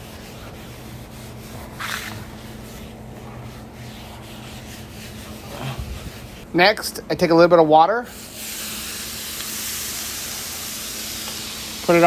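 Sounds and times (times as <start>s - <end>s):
water sizzling on griddle: 8.2s - 12.0s.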